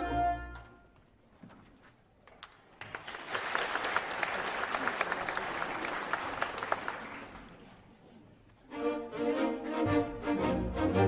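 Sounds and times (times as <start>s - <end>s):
audience applauding: 2.3s - 7.7s.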